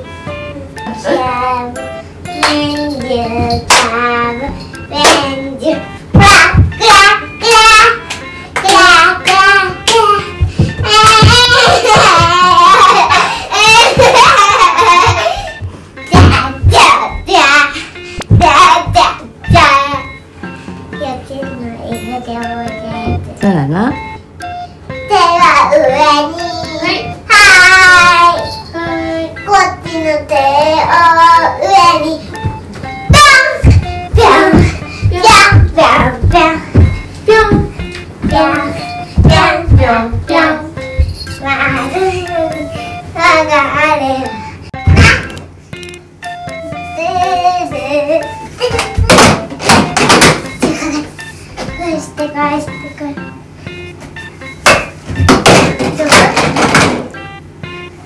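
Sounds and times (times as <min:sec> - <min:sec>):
child singing: 0:01.0 - 0:12.9, 0:21.0 - 0:23.3, 0:25.1 - 0:32.3, 0:33.2 - 0:44.4
hand claps: 0:02.4 - 0:02.8, 0:03.5 - 0:04.0, 0:08.0 - 0:10.0, 0:48.7 - 0:50.7
feet thudding on floor: 0:10.2 - 0:12.5, 0:18.2 - 0:19.8, 0:32.4 - 0:41.9, 0:44.8 - 0:45.4, 0:54.0 - 0:57.2
song with a beat: 0:32.0 - 0:51.0.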